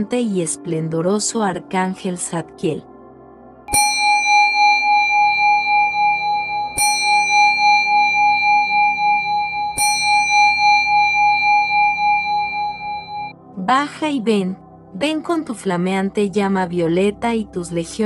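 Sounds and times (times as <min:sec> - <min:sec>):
soft background music: 0:00.0 - 0:18.0
bell ringing with pulsing hum: 0:03.7 - 0:13.3.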